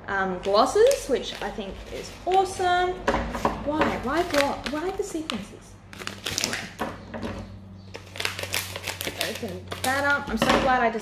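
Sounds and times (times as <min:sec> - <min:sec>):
scissors cutting foil: 0:00.5 - 0:02.6, 0:03.9 - 0:06.8, 0:07.9 - 0:10.3
foil pouch crinkling: 0:00.7 - 0:02.6, 0:04.0 - 0:06.8, 0:07.8 - 0:10.2.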